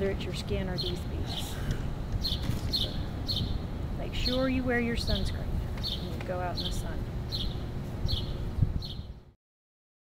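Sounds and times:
bird chirping: 0:02.2 - 0:09.2
low rumble on microphone: 0:05.3 - 0:09.3.

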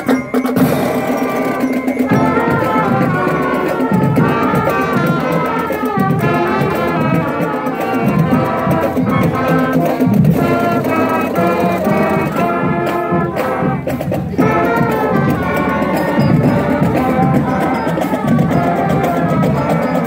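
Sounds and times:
marching band playing: 0:00.0 - 0:20.0.

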